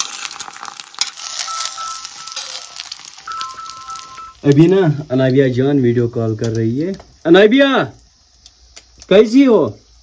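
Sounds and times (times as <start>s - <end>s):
egg sizzling in oil: 0.0s - 5.5s, 6.4s - 10.0s
phone ringing two-note tone: 1.3s - 4.4s.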